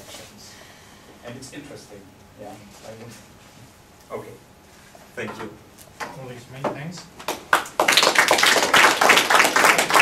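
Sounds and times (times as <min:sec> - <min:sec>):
audience applauding: 0:07.3 - 0:10.0.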